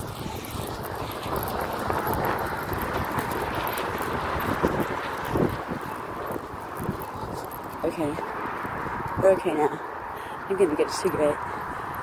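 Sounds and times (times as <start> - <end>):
microphone clicks and rustles: 0.0 - 9.3
steady rushing noise: 0.0 - 12.0.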